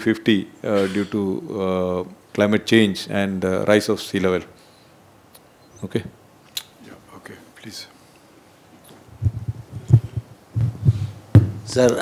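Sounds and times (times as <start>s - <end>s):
microphone handling thumps: 8.9s - 11.8s.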